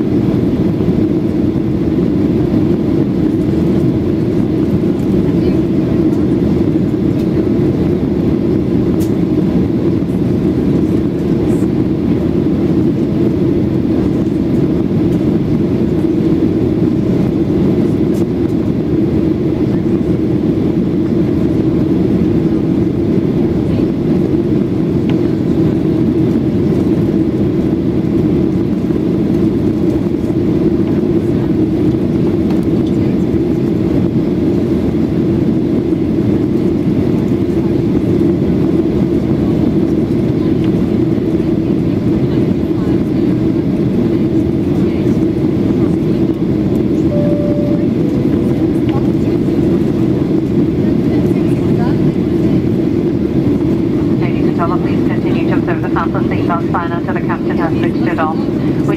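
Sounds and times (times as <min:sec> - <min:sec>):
jet engine hum: 0:00.0 - 0:58.9.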